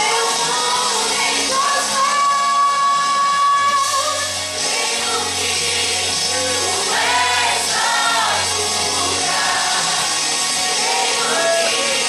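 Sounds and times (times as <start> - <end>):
choir singing: 4.6 - 12.0.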